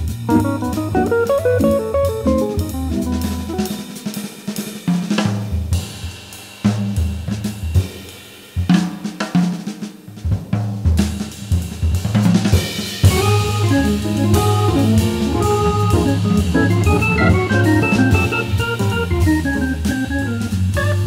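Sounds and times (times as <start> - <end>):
low organ bass notes: 0.0 - 3.9, 13.1 - 21.0
jazz drum kit playing: 0.0 - 21.0.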